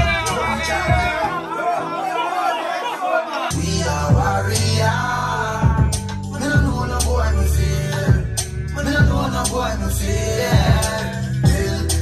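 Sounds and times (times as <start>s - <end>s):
loud dancehall music: 0.0s - 12.0s
men talking and singing along: 0.0s - 12.0s.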